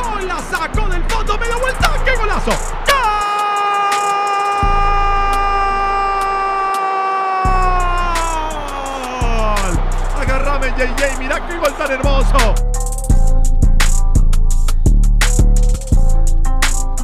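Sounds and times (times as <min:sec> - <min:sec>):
commentator shouting goal cry: 0:00.0 - 0:12.6
hip-hop beat: 0:00.0 - 0:17.0.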